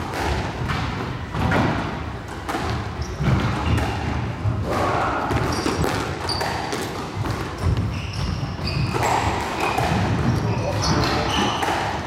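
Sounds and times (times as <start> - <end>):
squash ball bouncing: 0.0 - 12.0
trainers squeaking on wooden floor: 2.9 - 4.3, 5.3 - 6.8, 7.4 - 12.0.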